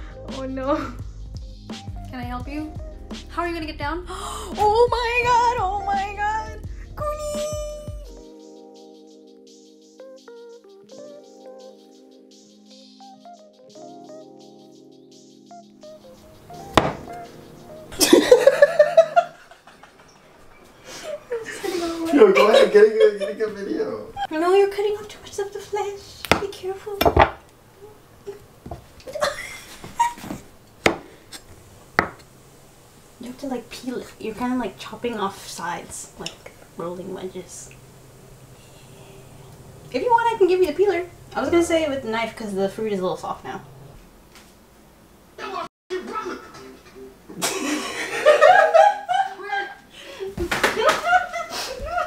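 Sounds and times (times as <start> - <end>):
knife knocking on cutting board: 16.7 - 17.2, 30.9 - 31.1, 32.0 - 32.2
woman laughing uncontrollably: 17.9 - 20.1, 29.1 - 30.4, 47.3 - 52.0.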